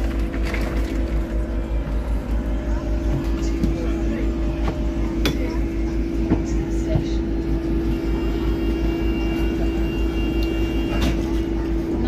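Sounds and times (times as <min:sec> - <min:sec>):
bus engine low rumble: 0:00.0 - 0:12.0
constant hum: 0:00.0 - 0:12.0.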